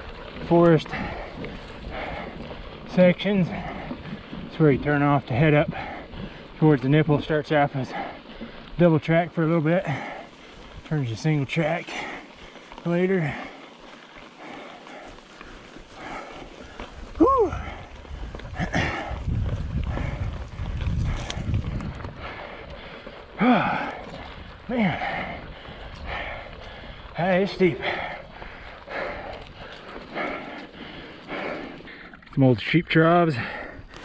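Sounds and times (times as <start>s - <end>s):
rider vocal sounds: 0.0s - 13.7s, 15.9s - 21.3s, 23.3s - 33.9s
bike tyres rumbling on dirt: 0.0s - 34.0s.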